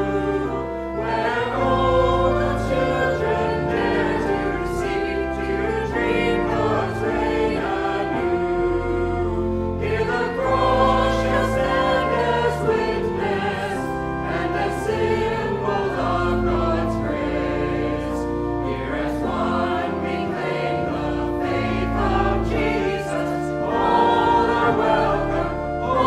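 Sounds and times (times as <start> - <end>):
choir singing a hymn: 0.0 - 26.0.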